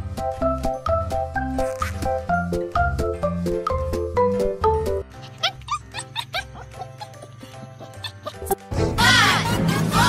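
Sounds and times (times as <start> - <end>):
quiet background music: 0.0 - 10.0
puppy yipping and whimpering: 5.2 - 8.6.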